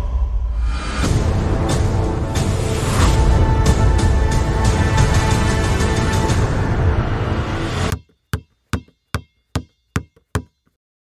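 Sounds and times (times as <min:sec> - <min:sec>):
basketball bouncing: 0:07.9 - 0:10.7.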